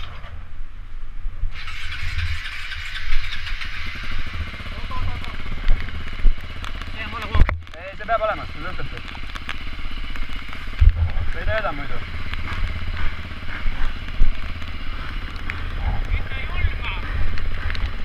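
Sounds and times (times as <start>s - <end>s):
motorcycle engine idling: 1.6s - 18.0s.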